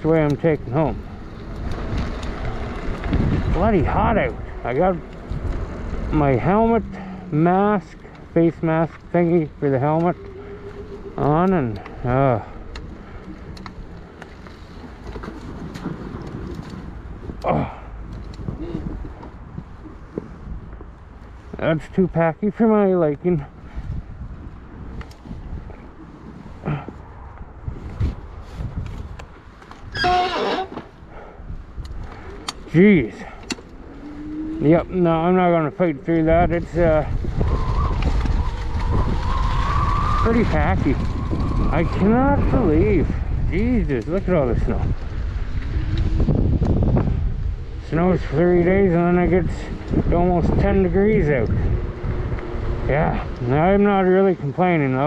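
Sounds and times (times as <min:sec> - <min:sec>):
tyres rumbling on pavement: 0:00.0 - 0:55.0
wind rushing over microphone: 0:00.0 - 0:55.0.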